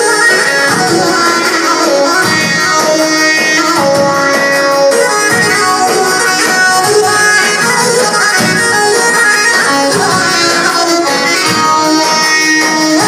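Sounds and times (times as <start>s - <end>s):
electronic keyboard folk dance music: 0.0s - 13.0s.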